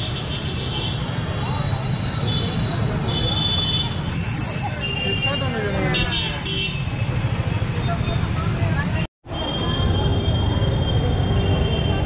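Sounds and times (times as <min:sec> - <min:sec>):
motorbike traffic: 0:00.0 - 0:12.0.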